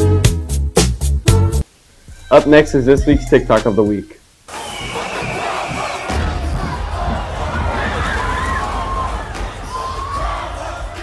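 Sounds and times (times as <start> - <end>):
crowd shouting and screaming: 4.5 - 11.0.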